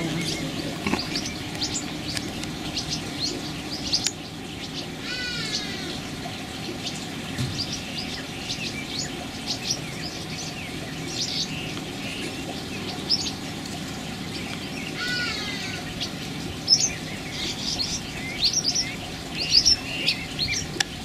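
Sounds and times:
bird chirping: 0.0s - 21.0s.

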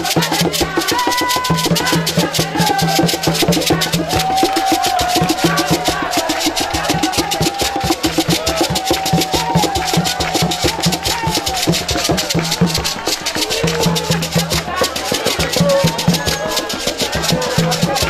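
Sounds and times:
hand drumming on wooden drums: 0.0s - 18.0s.

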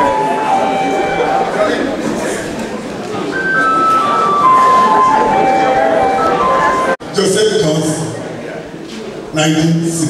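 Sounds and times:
simple electronic tune: 0.0s - 1.9s, 3.3s - 7.0s
background chatter: 0.0s - 10.0s.

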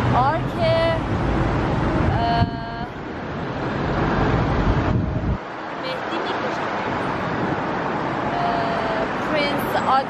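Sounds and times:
wind buffeting microphone: 0.0s - 9.9s
road traffic: 0.0s - 10.0s.

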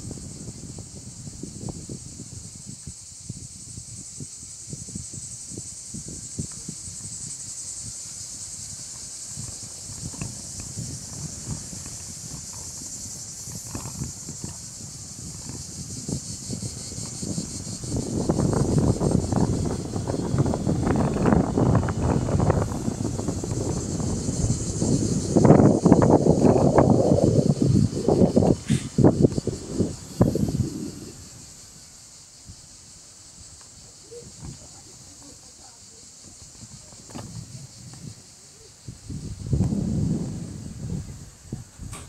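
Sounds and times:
insect chorus: 0.0s - 42.0s
rumbling and crackling noise: 6.2s - 31.9s.

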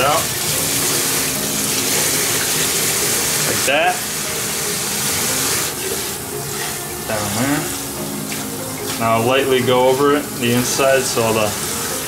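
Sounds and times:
faucet water running: 0.0s - 12.0s.

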